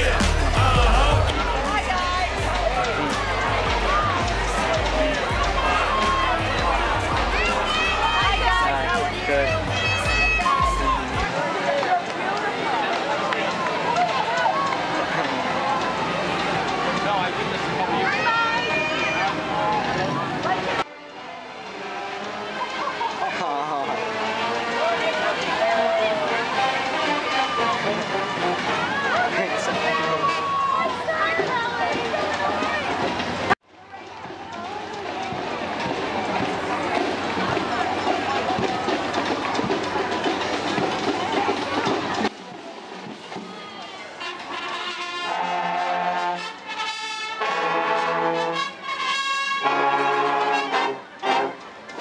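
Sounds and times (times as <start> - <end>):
marching brass band: 0.0 - 11.4, 20.8 - 33.5, 44.0 - 52.0
crowd talking and calling out: 0.0 - 52.0.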